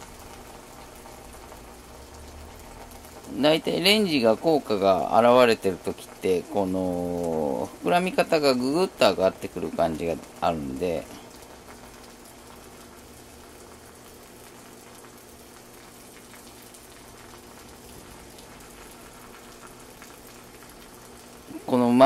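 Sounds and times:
water trickling onto coffee grounds: 0:00.0 - 0:22.0.

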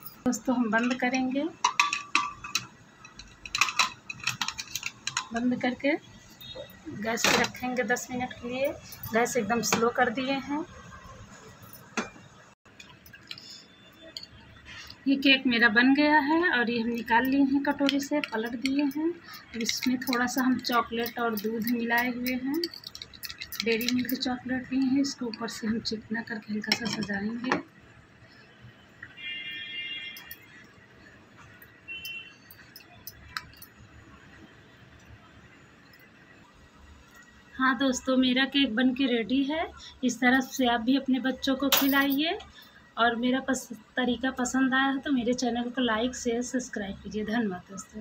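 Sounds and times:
faint ticks and clinks: 0:17.0 - 0:25.1.

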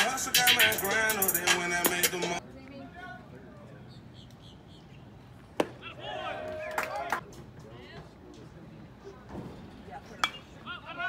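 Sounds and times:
faint open-air background: 0:00.0 - 0:11.0.

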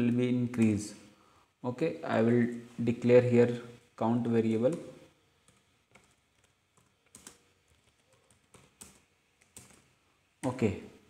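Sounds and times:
keyboard keystrokes: 0:05.5 - 0:09.8.

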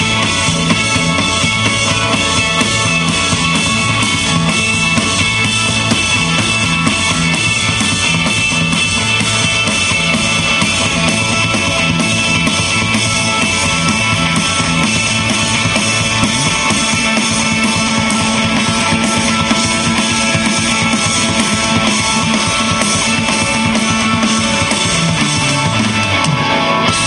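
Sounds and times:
rock band playing: 0:00.0 - 0:27.0.

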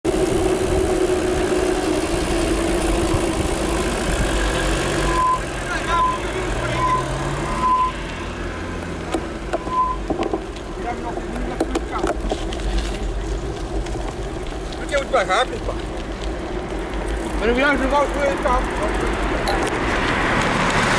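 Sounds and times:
tyres on wet tarmac: 0:00.0 - 0:20.9
wind noise: 0:00.1 - 0:05.4
short high squeak: 0:09.6 - 0:10.1.

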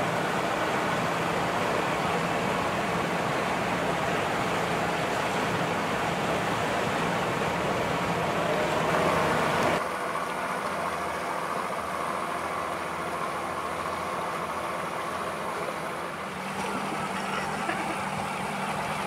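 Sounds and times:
outboard motor running: 0:00.0 - 0:19.0
water rushing: 0:00.0 - 0:19.0.

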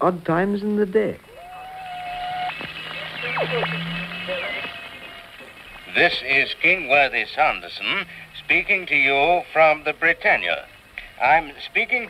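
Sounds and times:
faint hiss: 0:00.0 - 0:12.0
low hum: 0:01.2 - 0:12.0
radio tuning whistles: 0:01.3 - 0:12.0.

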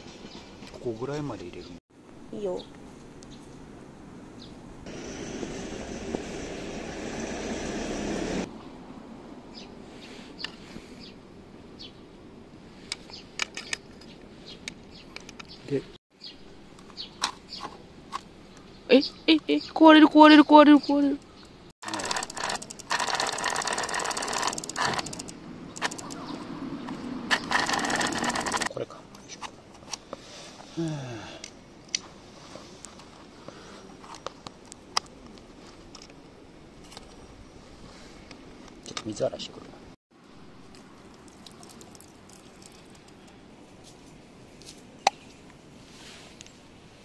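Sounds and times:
bicycle chain clicking and rasping: 0:21.8 - 0:26.3, 0:27.3 - 0:28.7
liquid pouring from a bottle: 0:40.9 - 0:43.2.

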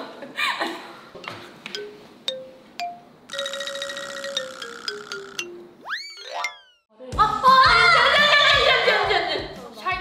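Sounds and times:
comic mallet plinking music: 0:01.2 - 0:06.9.

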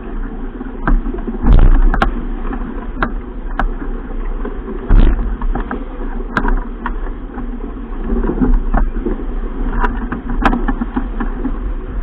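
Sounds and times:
water rushing past boat: 0:00.0 - 0:12.0
wind buffeting microphone: 0:00.0 - 0:12.0
sharp knocks and clicks: 0:00.8 - 0:03.8, 0:04.9 - 0:07.0, 0:09.7 - 0:11.6.

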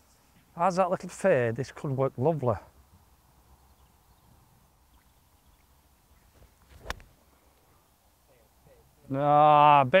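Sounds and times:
faint open-air background: 0:00.0 - 0:10.0
golf club striking ball: 0:06.7 - 0:07.1.

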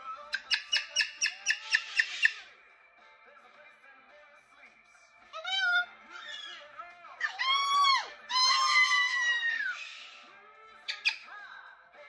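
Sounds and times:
cockatoo calling: 0:00.2 - 0:02.5, 0:05.4 - 0:10.3, 0:10.9 - 0:11.3.

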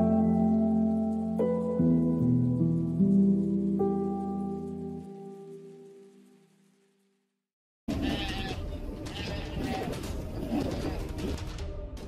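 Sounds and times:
animal calls: 0:08.0 - 0:11.4.

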